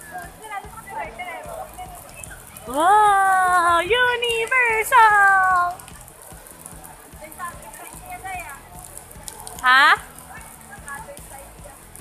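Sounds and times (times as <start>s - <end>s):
outdoor noise: 0.0s - 12.0s.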